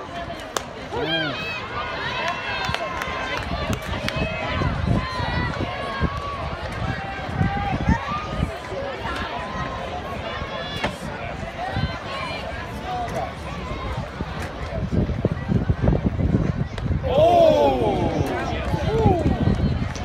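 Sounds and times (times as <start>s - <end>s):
people chattering and calling out: 0.0s - 20.0s.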